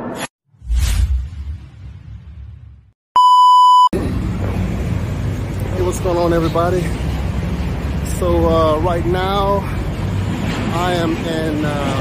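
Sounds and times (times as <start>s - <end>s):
test tone beep: 3.2s - 3.9s
outdoor background rumble: 4.0s - 12.0s.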